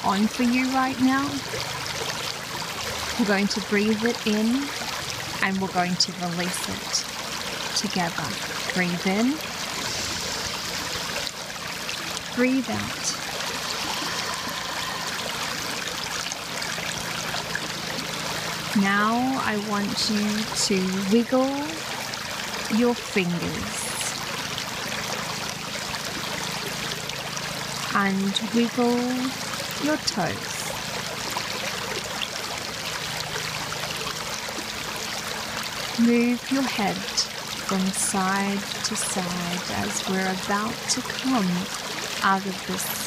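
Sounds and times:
creek running over stones: 0:00.0 - 0:43.0.

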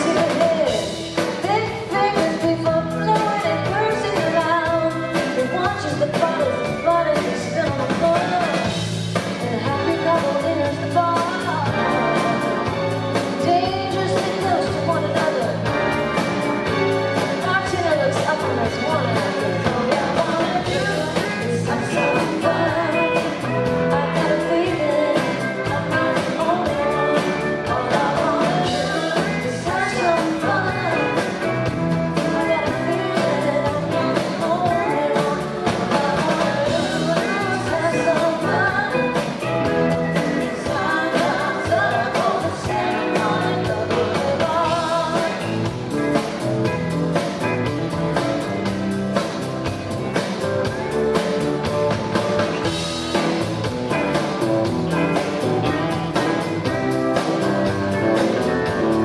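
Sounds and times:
electric guitars: 0:00.0 - 0:59.0
keyboards: 0:00.0 - 0:59.0
steady drum beat: 0:00.0 - 0:59.0
woman singing lead: 0:00.0 - 0:59.0.

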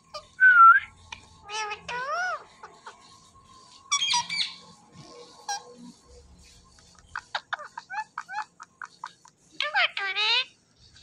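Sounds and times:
parakeet squeaky chirp: 0:00.0 - 0:04.8, 0:05.4 - 0:05.8, 0:06.8 - 0:10.6.

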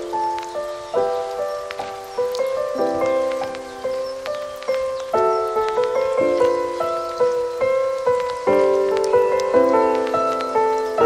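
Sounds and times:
faint crackling texture: 0:00.0 - 0:11.0.

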